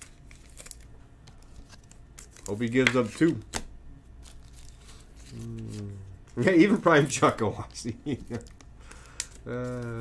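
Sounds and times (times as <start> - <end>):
low room hum: 0.0 - 10.0
trading cards handling: 0.0 - 10.0.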